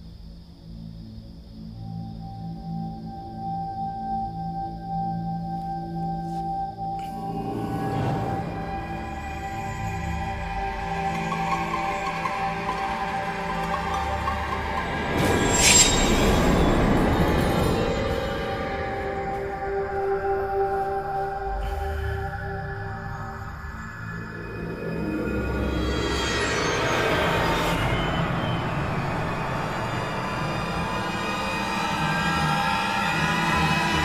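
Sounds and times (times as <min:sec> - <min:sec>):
shrill screeching horror sting: 0:07.1 - 0:19.3, 0:21.5 - 0:34.0.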